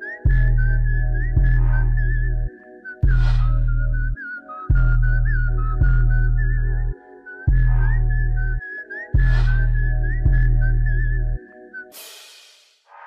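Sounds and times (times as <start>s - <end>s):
whistled melody: 0.0s - 12.1s
deep bass notes: 0.3s - 6.9s, 7.5s - 8.6s
sharp percussion hits: 11.9s - 13.0s.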